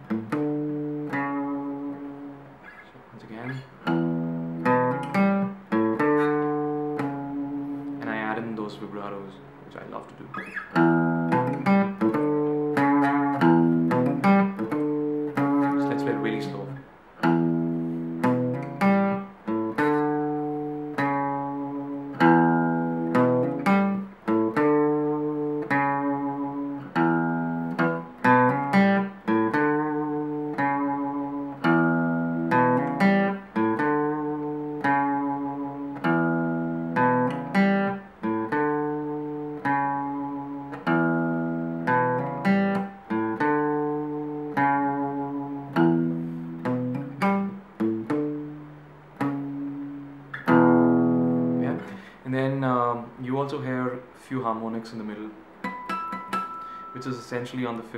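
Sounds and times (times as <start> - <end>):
acoustic guitar riff: 0.0 - 57.9.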